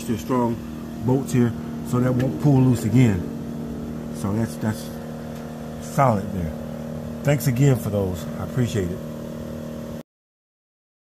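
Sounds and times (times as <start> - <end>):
machinery humming: 0.0 - 10.0.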